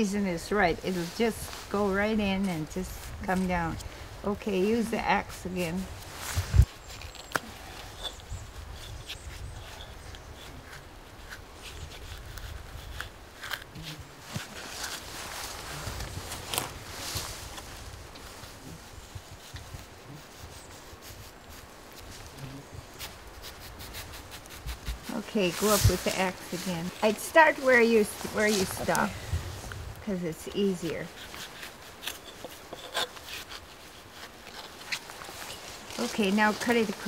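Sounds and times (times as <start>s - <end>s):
clothing rustling: 25.0s - 29.8s.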